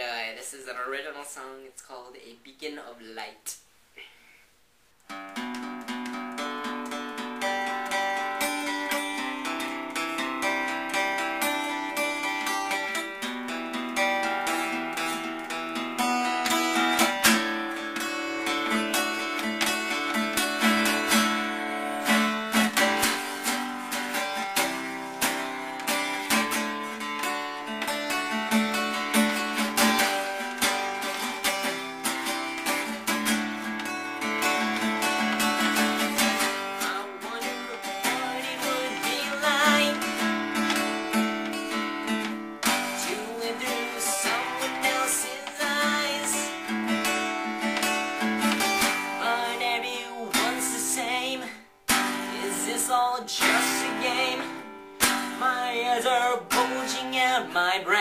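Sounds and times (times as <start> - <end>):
acoustic guitar playing: 5.0 - 58.0.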